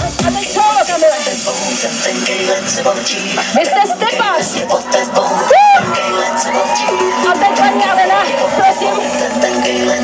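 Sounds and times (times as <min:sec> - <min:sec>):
live pop music with vocal: 0:00.0 - 0:10.0.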